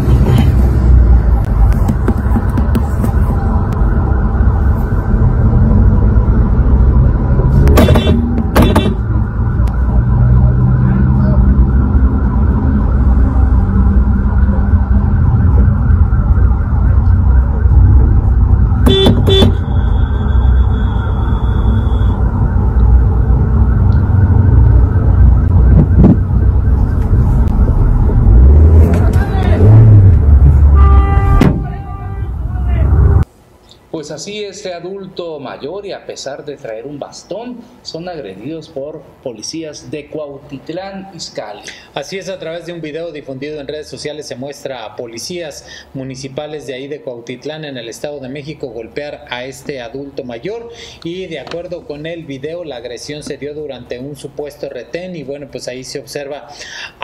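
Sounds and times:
low rumble of traffic: 0:00.0 - 0:57.0
rising and falling tones: 0:00.8 - 0:18.9, 0:19.6 - 0:33.2.

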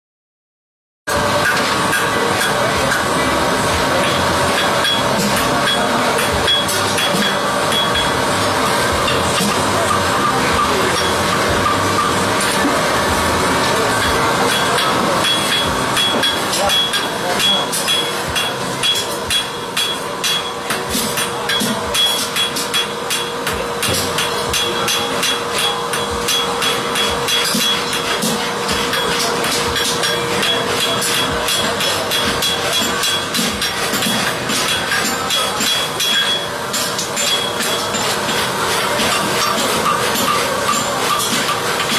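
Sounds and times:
hammer striking metal on anvil: 0:01.1 - 0:41.9.

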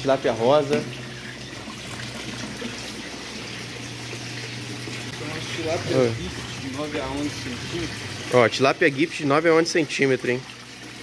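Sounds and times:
water pouring into tank: 0:00.0 - 0:11.0.

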